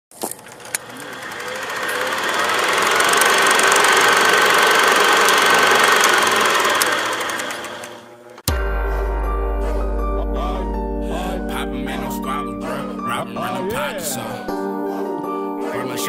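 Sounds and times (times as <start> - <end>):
rattling rushing crackling noise: 0.4 - 8.0
sharp clicks: 0.4 - 8.5.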